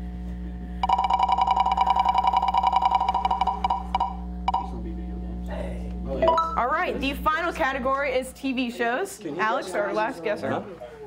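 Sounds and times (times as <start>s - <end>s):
ringing tone: 0.8s - 4.8s.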